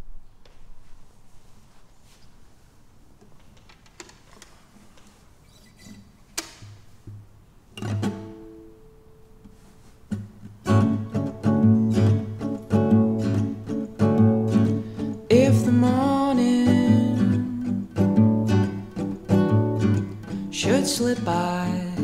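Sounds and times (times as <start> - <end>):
acoustic guitar chords: 7.0 - 22.0.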